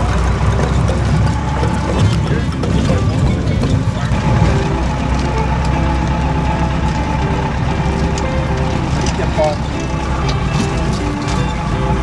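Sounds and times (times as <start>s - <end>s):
road noise: 0.0s - 12.0s
vehicle engine rumble: 0.0s - 12.0s.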